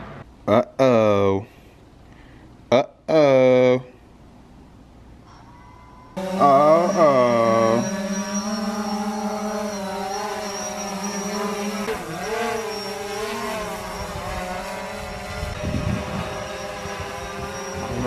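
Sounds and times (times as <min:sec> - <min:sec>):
drone propellers humming: 0:06.1 - 0:18.0
wind rumble on microphone: 0:13.8 - 0:18.0.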